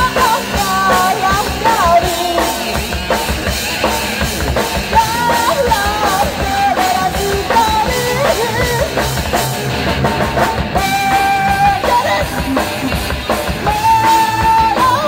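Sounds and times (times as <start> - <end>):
bass guitar: 0.0 - 15.0
drum kit: 0.0 - 15.0
electric guitar: 0.0 - 15.0.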